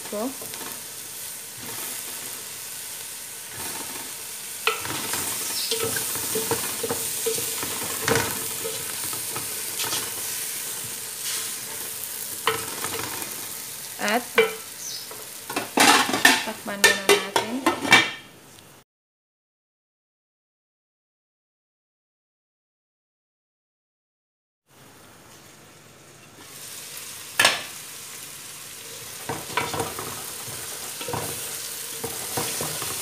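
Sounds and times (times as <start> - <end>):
food sizzling in oil: 0.0 - 17.8, 24.8 - 33.0
wooden spatula scraping a pot: 3.5 - 13.2, 29.0 - 33.0.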